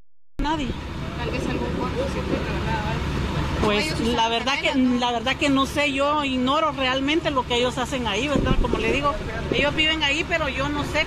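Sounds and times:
street noise: 0.4s - 11.0s
vehicle engine rumble: 0.4s - 11.0s.

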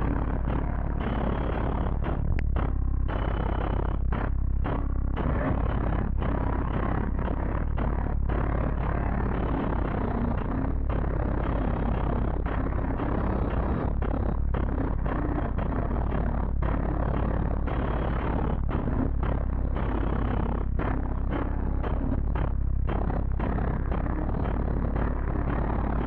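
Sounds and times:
bass-heavy electronic music: 0.0s - 26.0s.

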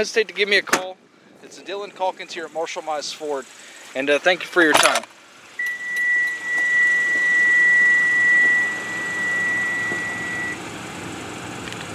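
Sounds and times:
high-pitched electronic beep: 5.6s - 10.6s.

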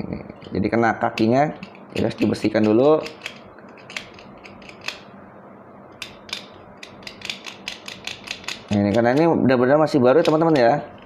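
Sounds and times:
blade scraping metal tabs: 1.2s - 5.1s, 6.0s - 9.3s.

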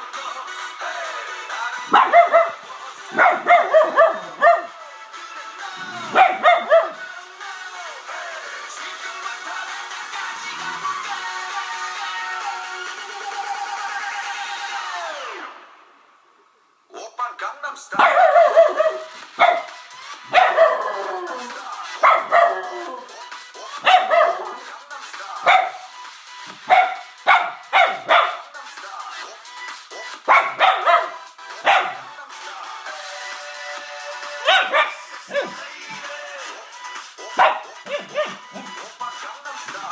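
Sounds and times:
music from a laptop: 0.0s - 16.6s, 17.7s - 39.9s
dog barking: 1.9s - 4.8s, 6.0s - 7.0s, 18.0s - 21.0s, 22.0s - 23.0s, 23.8s - 24.7s, 25.4s - 25.9s, 26.6s - 28.5s, 30.3s - 32.1s, 34.4s - 35.6s, 37.3s - 38.8s.

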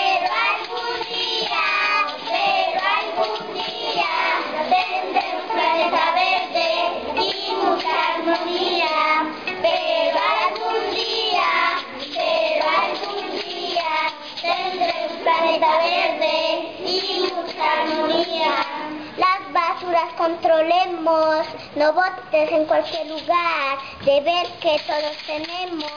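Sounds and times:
children singing: 0.0s - 19.9s.

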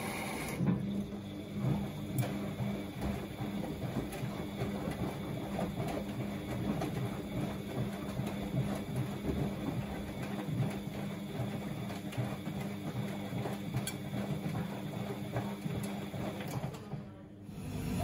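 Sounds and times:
washing machine motor hum: 0.0s - 18.0s
laundry knocking in drum: 1.6s - 16.4s.

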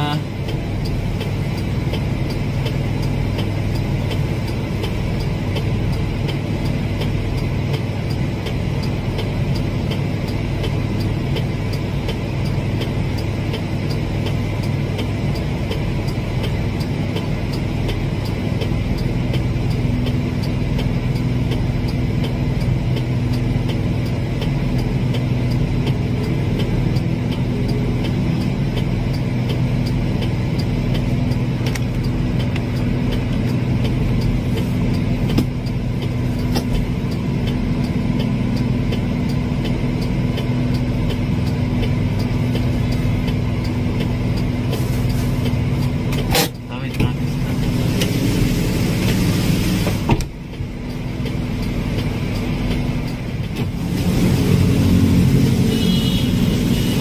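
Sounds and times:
vehicle engine idling: 0.0s - 57.0s.

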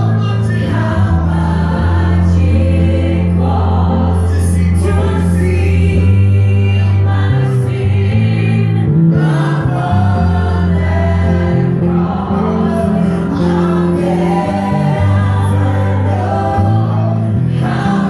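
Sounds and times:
choir singing over a band: 0.0s - 18.0s
electric bass low notes: 0.0s - 18.0s.

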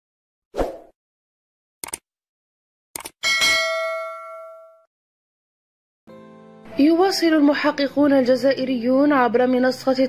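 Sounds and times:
bell chime ding: 3.2s - 4.9s.

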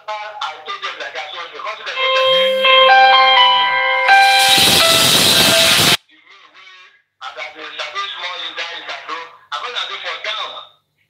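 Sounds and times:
electronic beeping melody: 2.0s - 6.0s
static hiss: 4.1s - 6.0s.

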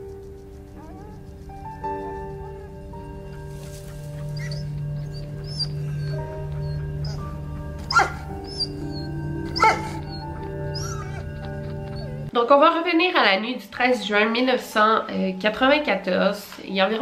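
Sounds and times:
sombre music with low drone: 0.0s - 12.4s
dog crying out: 7.8s - 12.3s.

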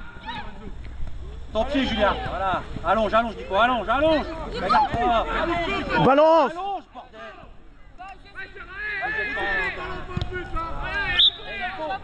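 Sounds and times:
people shouting: 8.4s - 10.0s.

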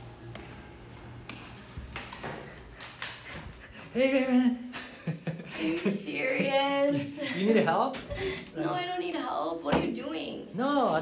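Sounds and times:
steady low hum: 0.0s - 4.4s
sandal footsteps on tiled floor: 0.1s - 4.0s.

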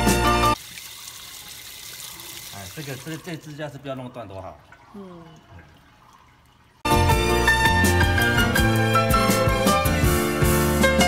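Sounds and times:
water running from a tap: 0.0s - 6.9s
water splashing on tiled floor: 0.6s - 3.7s.

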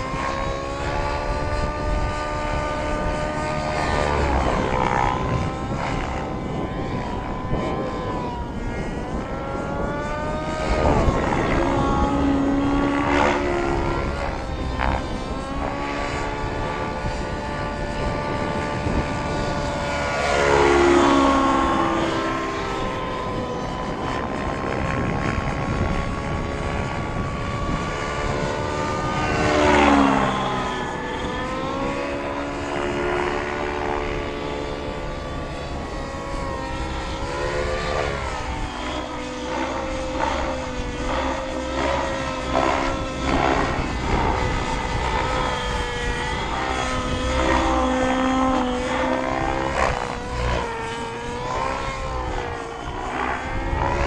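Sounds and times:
model helicopter engine and rotor whine: 0.0s - 54.0s.

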